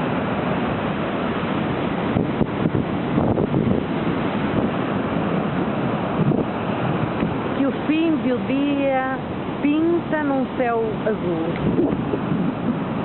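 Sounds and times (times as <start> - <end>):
surf breaking over rocks: 0.0 - 13.0
wind buffeting microphone: 0.0 - 13.0.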